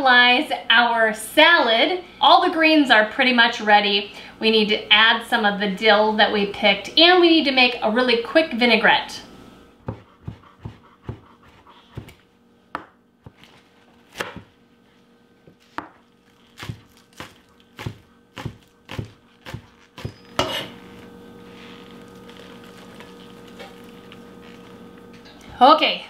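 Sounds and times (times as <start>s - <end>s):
faint steady hum: 0.0s - 26.0s
knife chopping on cutting board: 9.8s - 14.5s, 15.5s - 16.0s, 16.6s - 20.8s.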